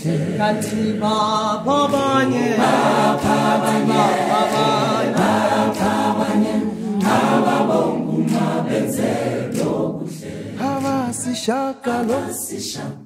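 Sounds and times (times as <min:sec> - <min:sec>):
choir singing gospel song: 0:00.0 - 0:13.0.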